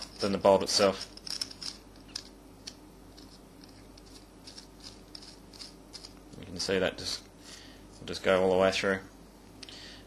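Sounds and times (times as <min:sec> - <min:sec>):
bolt thread scraping on metal: 0:03.2 - 0:06.2.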